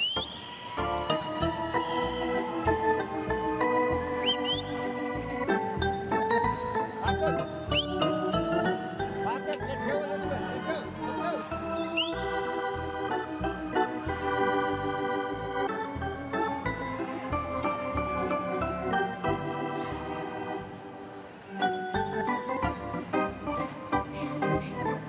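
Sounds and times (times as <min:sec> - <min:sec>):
organ playing chords: 0:00.9 - 0:25.0.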